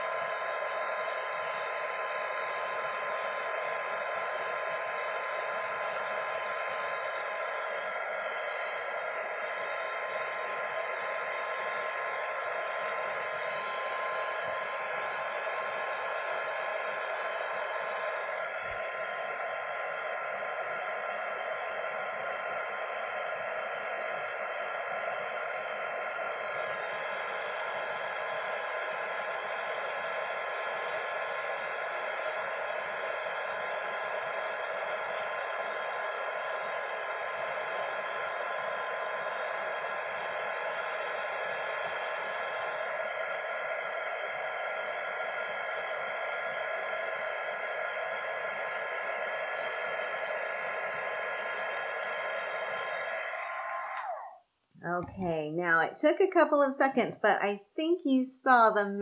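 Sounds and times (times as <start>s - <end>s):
heat gun blowing hot air: 0.0s - 55.2s.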